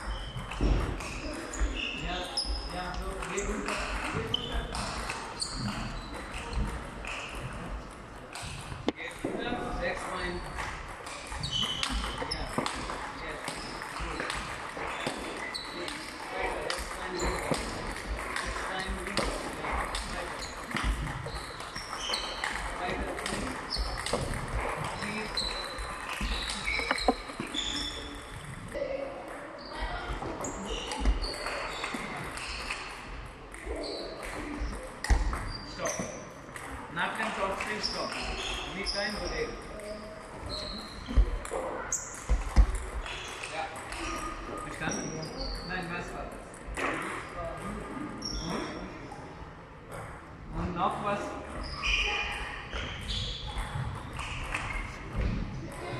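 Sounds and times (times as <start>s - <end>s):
shoes squeaking on floor: 0.0s - 7.8s, 9.3s - 17.8s, 18.6s - 28.5s, 29.6s - 33.0s, 33.6s - 36.5s, 37.6s - 46.1s, 48.1s - 49.0s, 51.4s - 55.9s
table tennis ball clicks: 25.3s - 28.5s.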